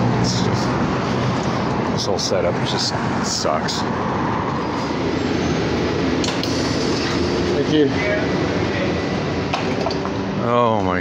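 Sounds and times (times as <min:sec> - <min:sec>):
bus engine: 0:00.0 - 0:11.0
road noise: 0:00.0 - 0:11.0.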